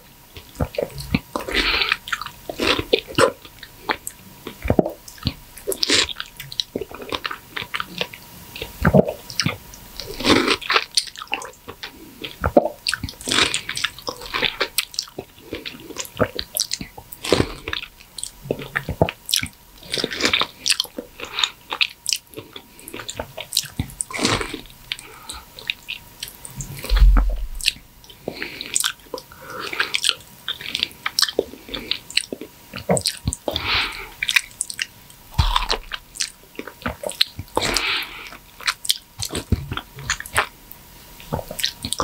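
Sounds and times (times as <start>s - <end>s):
wet chewing mouth sounds: 0.4s - 40.6s, 41.2s - 42.0s.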